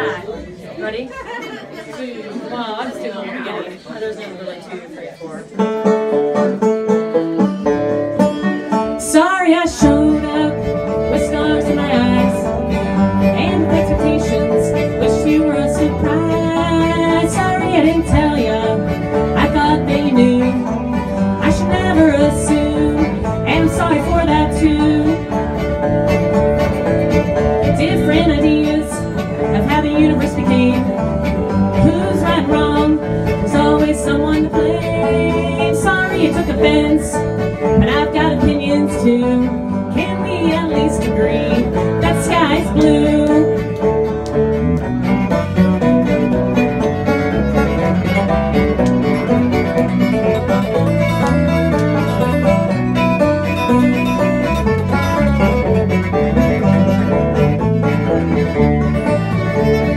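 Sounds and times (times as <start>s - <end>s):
banjo: 0.0s - 59.9s
acoustic guitar: 5.4s - 59.9s
fiddle: 5.4s - 59.9s
electric bass: 9.6s - 59.9s.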